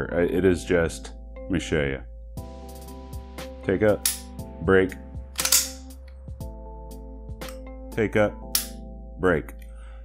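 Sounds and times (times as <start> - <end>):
background music: 0.0 - 10.0
pistol slide racked: 5.4 - 5.8.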